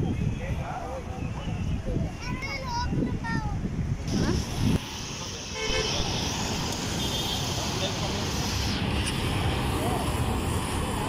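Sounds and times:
road traffic: 0.0s - 11.0s
motorbikes going by: 4.1s - 11.0s
short horn toots: 5.6s - 6.2s.

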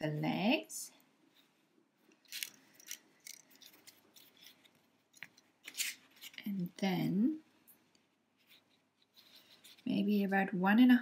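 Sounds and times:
wire scraping and rustling: 1.4s - 6.5s, 7.9s - 10.0s.

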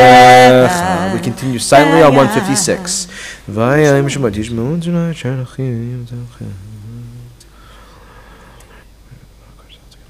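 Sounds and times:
man chanting low note: 0.2s - 4.9s
faint murmuring prayer: 1.0s - 3.1s.

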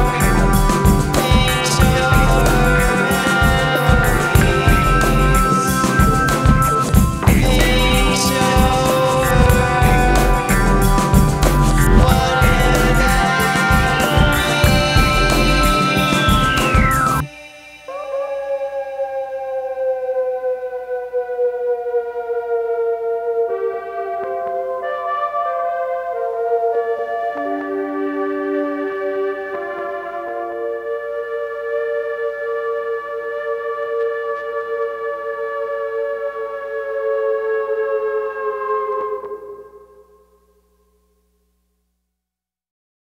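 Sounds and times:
electronic tone gliding down: 0.0s - 21.7s.

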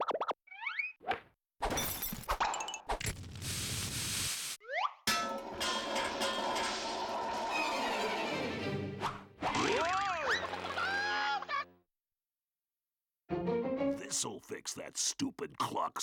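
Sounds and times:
orchestral music: 5.2s - 9.4s, 13.3s - 14.2s.

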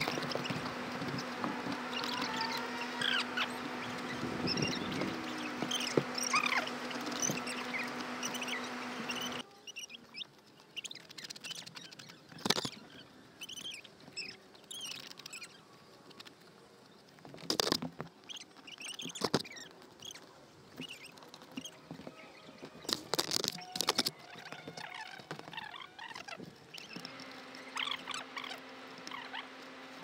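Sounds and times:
steady low hum: 0.0s - 9.5s, 24.2s - 30.0s
birds chirping: 0.0s - 30.0s.

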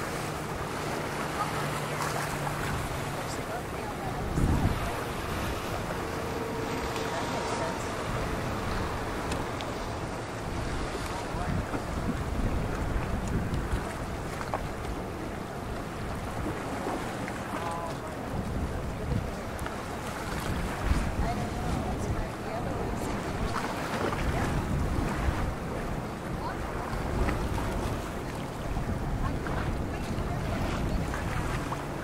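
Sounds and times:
wind buffeting microphone: 0.0s - 17.1s, 17.7s - 32.0s
waves washing: 0.0s - 32.0s.

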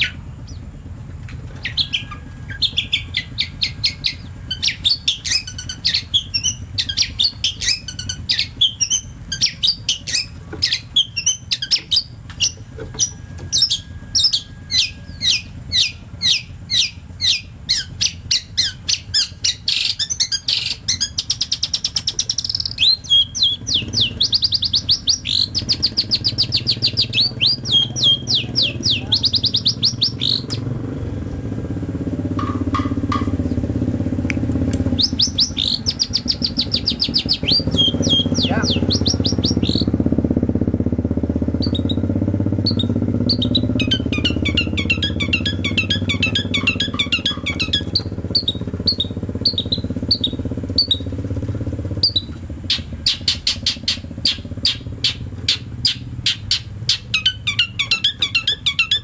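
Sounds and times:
bird chirping and chattering: 0.0s - 30.7s, 34.8s - 40.0s, 41.5s - 51.1s, 52.0s - 59.0s
low steady rumble: 0.0s - 59.0s.

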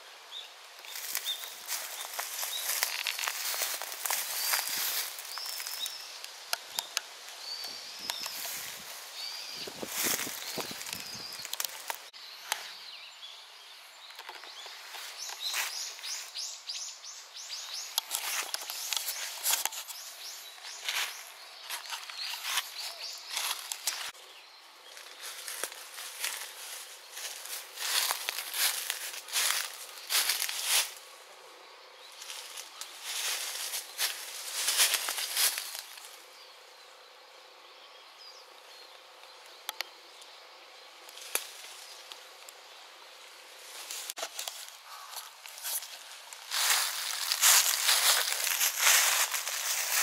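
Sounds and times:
steady background hiss: 0.0s - 50.0s
rustles and crackles: 0.8s - 12.7s, 17.7s - 24.2s, 24.9s - 31.0s, 32.2s - 36.2s, 43.5s - 50.0s.

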